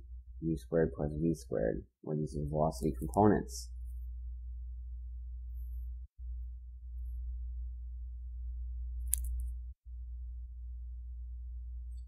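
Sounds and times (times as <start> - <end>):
low electrical hum: 0.0 - 12.0
short click: 9.1 - 9.5.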